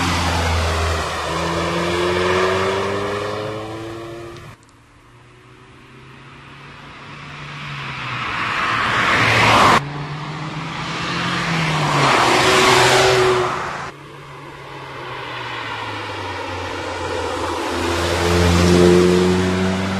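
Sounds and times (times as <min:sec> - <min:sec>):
car driving past: 0:00.0 - 0:19.9.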